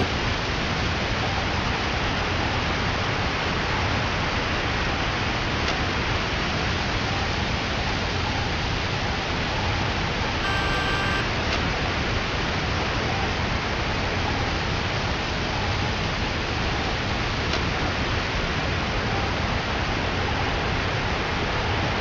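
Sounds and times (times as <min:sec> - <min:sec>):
short electronic beep: 0:10.4 - 0:11.2.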